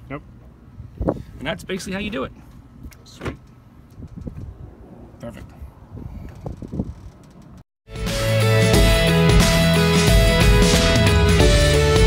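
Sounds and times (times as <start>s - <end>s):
wind rumbling on microphone: 0.7s - 1.8s, 3.8s - 7.6s
music: 7.9s - 12.0s.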